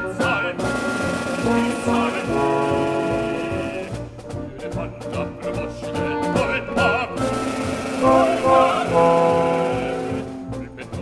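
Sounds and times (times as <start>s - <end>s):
brass: 0.0s - 11.0s
opera orchestra playing: 0.0s - 11.0s.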